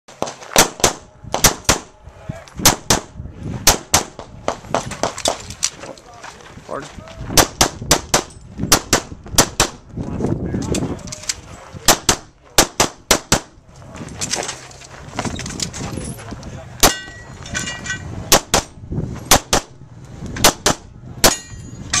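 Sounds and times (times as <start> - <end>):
rapid pistol fire: 7.4 - 9.8, 11.9 - 13.6, 19.3 - 19.7, 20.4 - 20.8.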